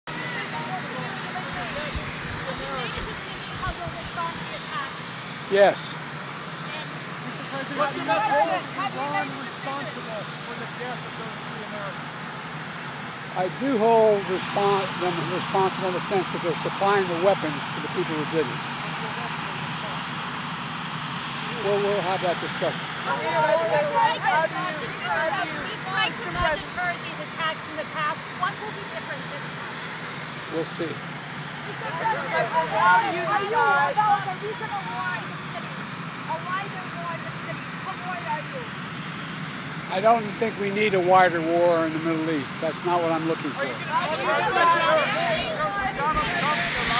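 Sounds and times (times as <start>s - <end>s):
faint voices: 0.1s - 20.6s, 21.3s - 39.1s, 39.8s - 46.9s
engine drone: 0.1s - 46.9s.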